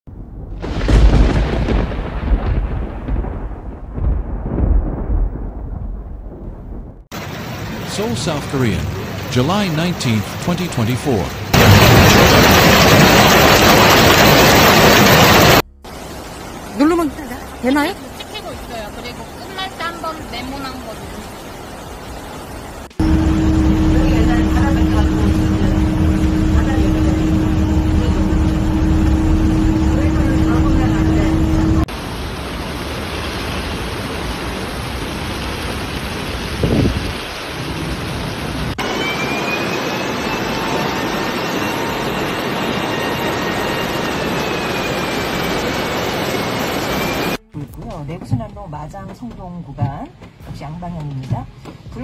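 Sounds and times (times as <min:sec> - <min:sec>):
rushing floodwater: 0:07.1 - 0:47.4
steady low hum: 0:23.0 - 0:31.9.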